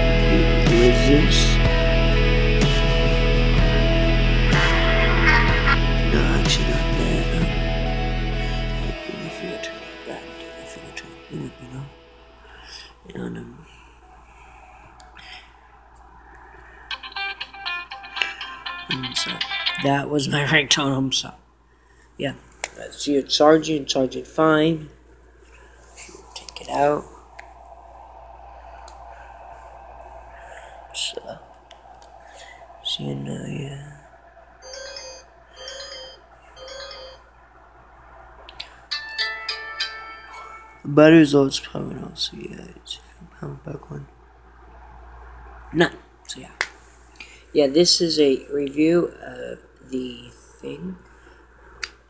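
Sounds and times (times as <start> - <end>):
phone ringtone melody: 16.9 - 20.1, 34.6 - 37.4, 38.9 - 41.0
phone electronic chimes: 34.6 - 37.3.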